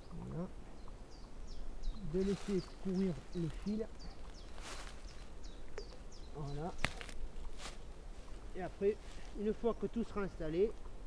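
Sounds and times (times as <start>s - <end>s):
small bird chirping: 0.0s - 7.7s
brief rustle: 6.8s - 7.8s.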